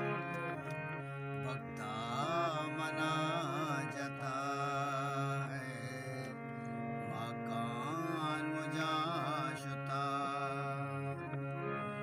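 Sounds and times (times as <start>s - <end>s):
harmonium held notes: 0.0s - 12.0s
man singing melismatically: 1.4s - 12.0s.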